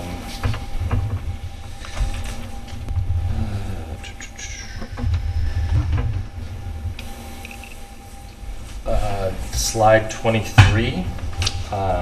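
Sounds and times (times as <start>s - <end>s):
low handling rumble: 0.0s - 12.0s
scattered knocks: 0.4s - 3.1s, 4.0s - 7.7s.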